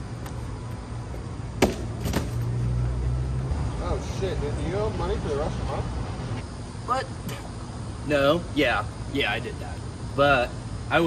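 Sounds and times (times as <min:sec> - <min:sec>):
motor vehicle rumble: 0:00.0 - 0:06.5.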